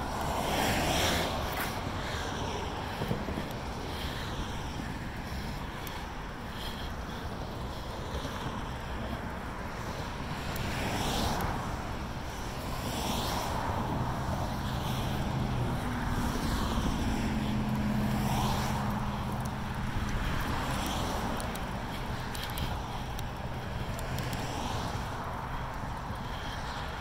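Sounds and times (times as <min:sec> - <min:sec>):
wind on microphone: 0:00.0 - 0:06.4
cars passing: 0:00.0 - 0:27.0.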